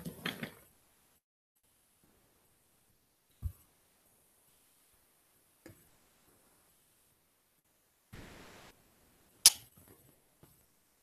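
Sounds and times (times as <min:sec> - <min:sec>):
sharp click: 0:09.4 - 0:09.7.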